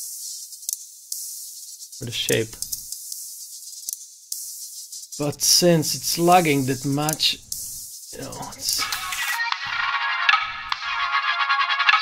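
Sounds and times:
crisp percussion ticks: 0.1s - 9.6s.

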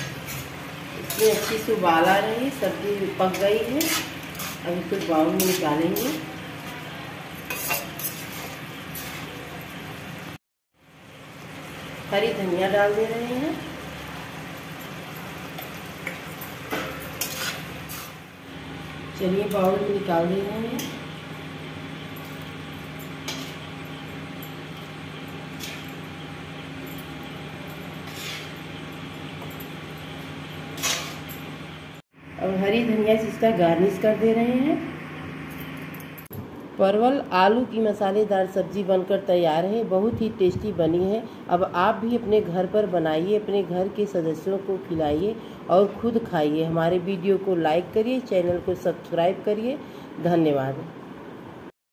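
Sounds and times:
spatula scraping a pan: 0.0s - 2.2s, 3.2s - 6.2s, 7.4s - 9.4s, 17.1s - 18.2s, 23.2s - 23.6s, 28.0s - 28.7s, 30.7s - 31.3s
gravy sizzling: 0.0s - 19.2s.

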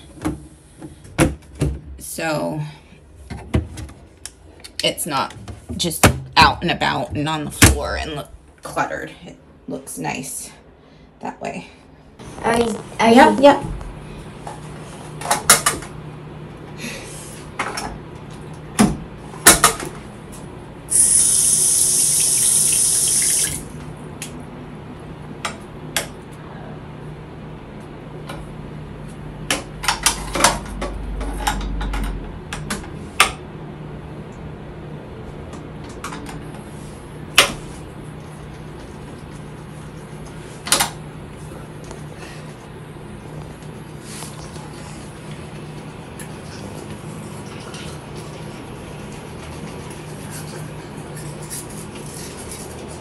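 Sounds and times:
sink tap running: 20.9s - 23.6s.

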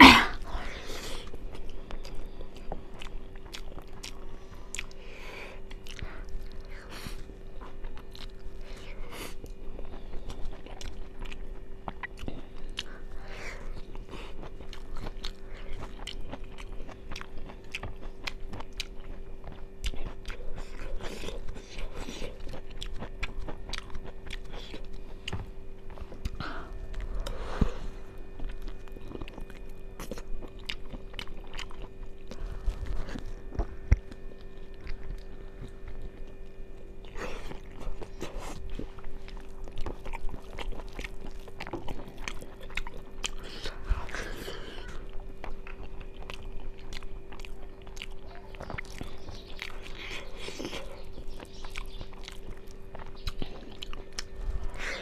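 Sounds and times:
person chewing with wet clicks: 0.4s - 55.0s.

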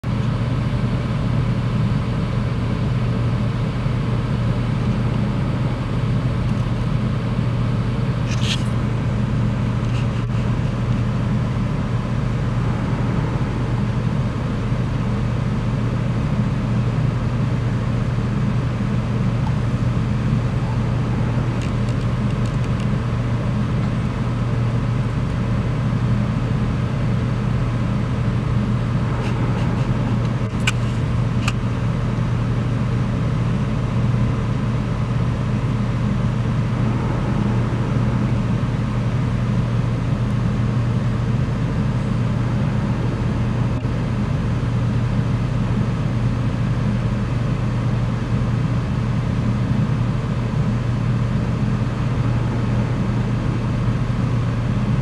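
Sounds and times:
low engine drone: 0.0s - 55.0s.

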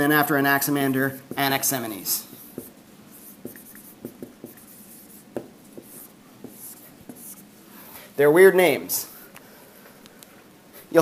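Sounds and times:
marker squeaking on whiteboard: 1.3s - 7.5s.

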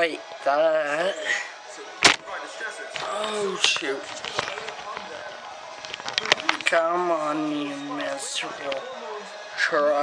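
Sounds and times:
phone handling rustle: 2.9s - 5.2s.

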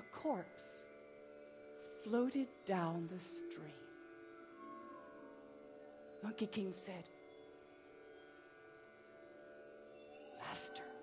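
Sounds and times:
soft sustained instrumental notes: 0.0s - 11.0s.

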